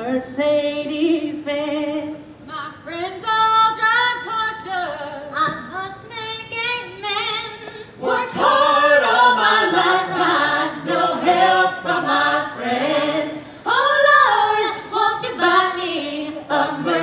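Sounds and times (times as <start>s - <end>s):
group singing in harmony: 7.2s - 17.0s.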